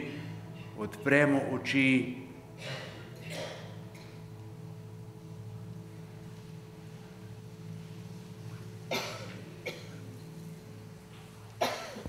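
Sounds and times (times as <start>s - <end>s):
steady low hum: 0.0s - 12.0s
person coughing: 2.6s - 4.1s, 8.9s - 10.1s, 11.6s - 12.0s.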